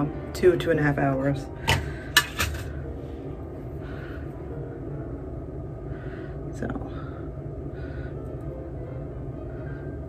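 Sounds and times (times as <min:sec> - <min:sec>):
low background hum: 0:00.0 - 0:10.0.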